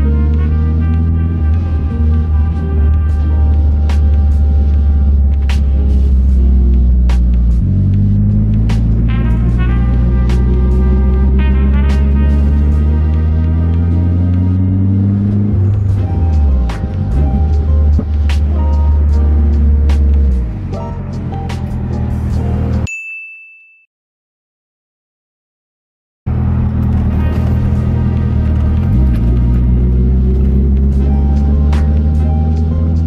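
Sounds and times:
car engine drone: 0:00.0 - 0:22.9, 0:26.3 - 0:33.0
chill music with keyboard: 0:00.0 - 0:22.9, 0:26.9 - 0:33.0.

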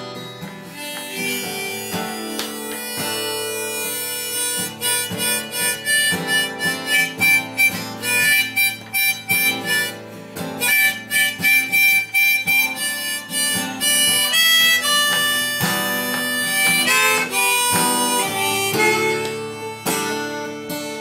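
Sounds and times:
acoustic guitar strumming: 0:00.0 - 0:21.0
harmonica playing long notes: 0:00.0 - 0:21.0.

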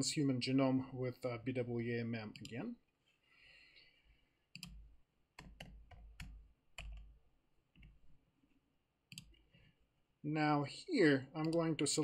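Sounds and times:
computer mouse clicks: 0:04.5 - 0:04.8, 0:09.1 - 0:09.6, 0:11.4 - 0:11.7.

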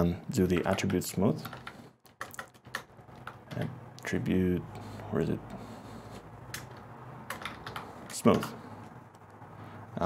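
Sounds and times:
computer keyboard key clicks: 0:00.6 - 0:03.5, 0:07.3 - 0:07.8.

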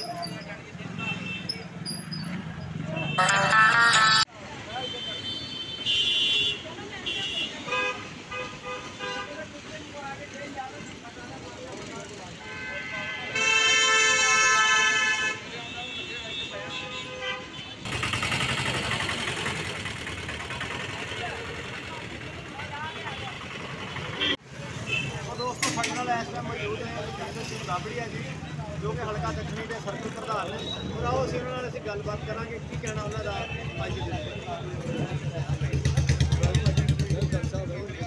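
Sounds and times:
traffic noise: 0:00.0 - 0:38.0
voices: 0:17.9 - 0:38.0.

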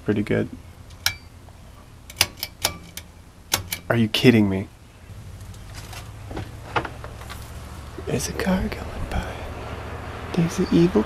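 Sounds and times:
pull-string light switch clicks: 0:02.1 - 0:03.9.

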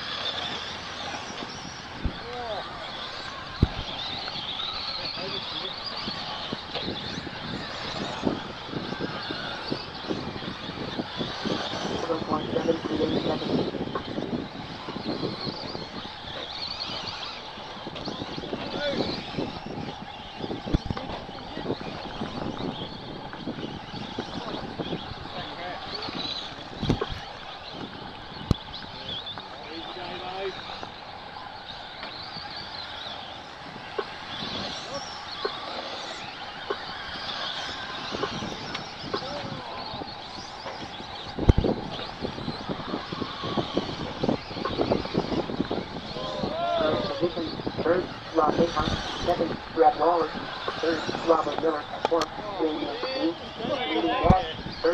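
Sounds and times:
rc truck motors whining: 0:00.0 - 0:54.9
steady rushing noise: 0:00.0 - 0:54.9.

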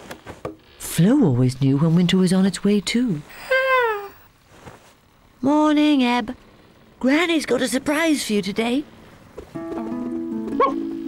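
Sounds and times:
soft background music: 0:09.6 - 0:11.0
cartoon dog yip: 0:10.6 - 0:10.8.

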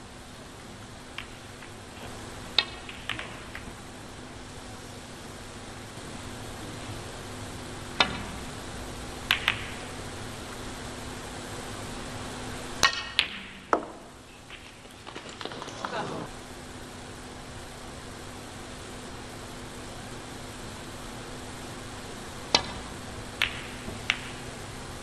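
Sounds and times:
snooker balls clicking: 0:01.1 - 0:03.9, 0:09.3 - 0:10.2, 0:12.8 - 0:16.3, 0:22.5 - 0:24.7.

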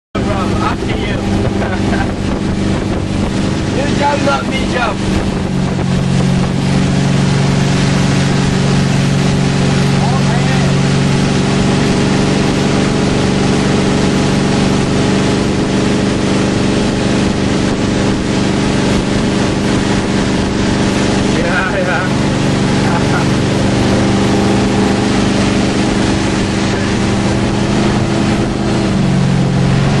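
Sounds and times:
motorboat engine running: 0:00.2 - 0:30.0
rushing water: 0:00.2 - 0:30.0
wind: 0:00.2 - 0:30.0.

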